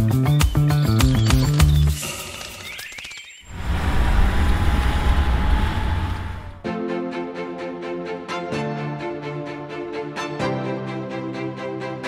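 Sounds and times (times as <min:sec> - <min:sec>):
car driving by: 0:03.5 - 0:06.6.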